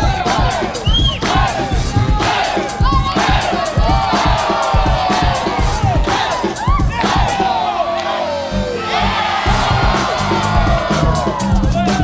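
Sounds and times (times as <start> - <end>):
crowd shouting and cheering: 0.0 - 12.0
loud dance music: 0.0 - 12.0.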